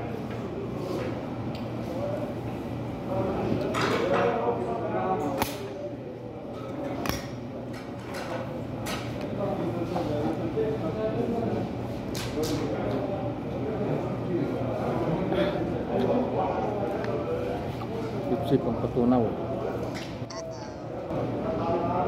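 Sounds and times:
indistinct voices: 20.3 - 21.1.

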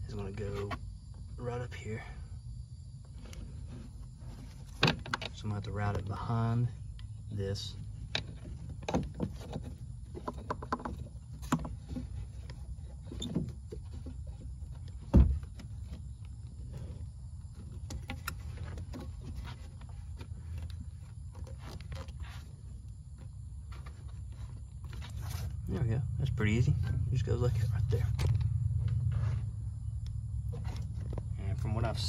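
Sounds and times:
hands handling rubber hose: 8.0 - 25.7
steady low rumble: 22.6 - 32.0.

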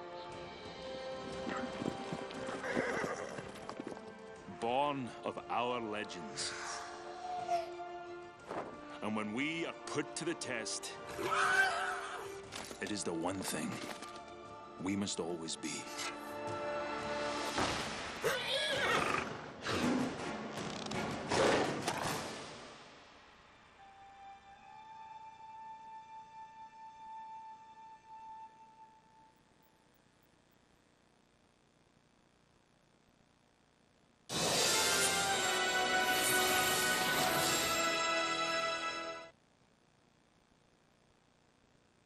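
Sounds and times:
hooves galloping: 0.3 - 4.6
horse whinnying: 2.4 - 3.8, 11.1 - 12.4, 18.2 - 19.9
music with long held notes: 23.8 - 29.4.

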